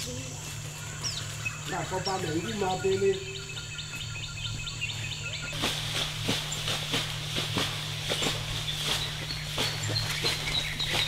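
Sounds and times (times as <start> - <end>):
low steady hum: 0.0 - 11.0
high chirping animal calls: 0.2 - 5.6
footstep thud: 5.5 - 11.0.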